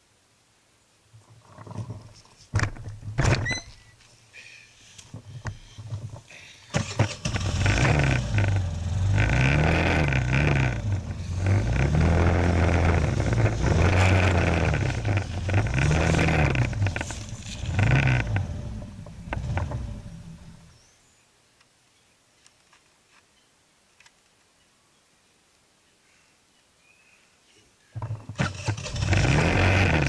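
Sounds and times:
scooter engine revving: 0:06.7 - 0:20.6, 0:28.3 - 0:30.0.

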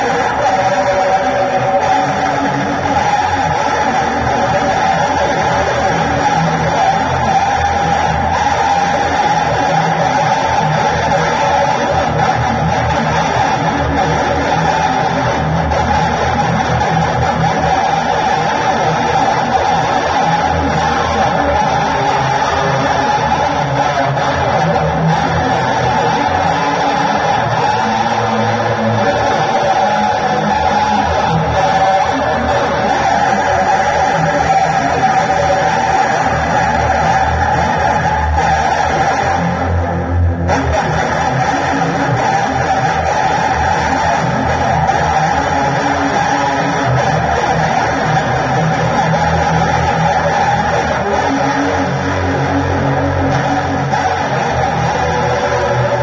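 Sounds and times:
backing track from loudspeaker: 0:00.0 - 0:56.0
electric guitar: 0:00.0 - 0:56.0.

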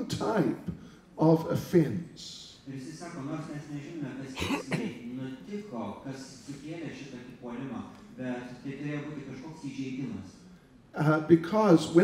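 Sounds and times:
man coughing: 0:04.3 - 0:05.1.

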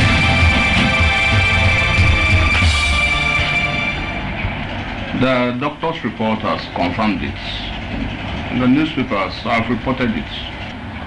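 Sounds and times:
low steady background rumble: 0:00.0 - 0:11.0.

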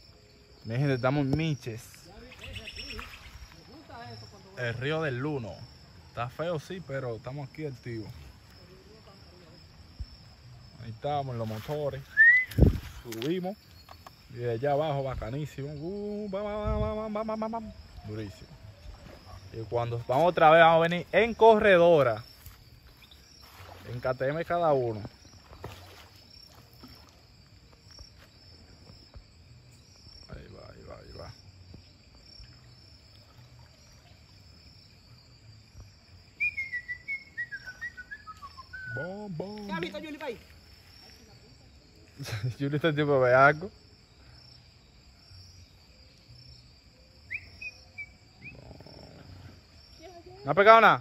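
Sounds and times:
high-pitched insect chorus: 0:00.0 - 0:51.0
short insect chirps: 0:00.0 - 0:51.0.

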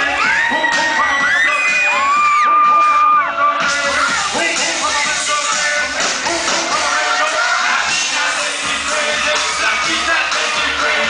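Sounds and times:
crowd screaming: 0:00.0 - 0:05.0, 0:07.0 - 0:11.0
loud live concert music: 0:00.0 - 0:11.0.

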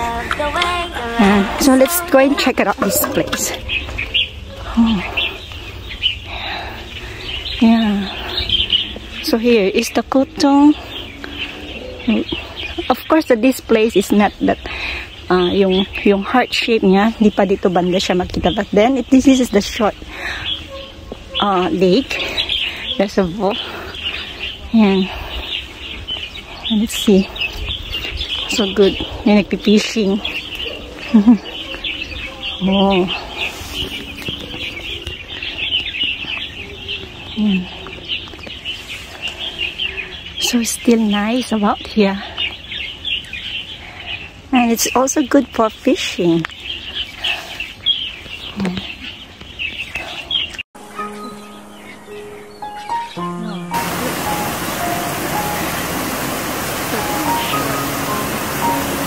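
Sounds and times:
small birds chirping: 0:00.0 - 0:59.0.

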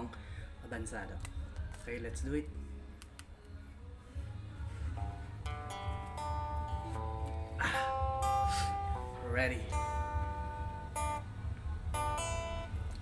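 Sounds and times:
plucked guitar notes: 0:05.0 - 0:13.0.

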